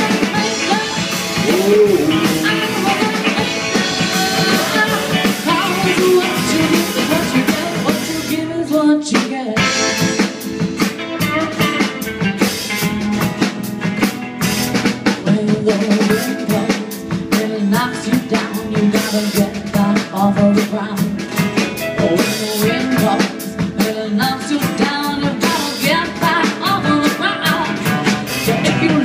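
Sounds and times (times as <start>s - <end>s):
upright bass: 0.0s - 8.9s, 9.6s - 29.0s
drum kit with snare rimshots: 0.0s - 29.0s
electric guitars: 0.0s - 29.0s.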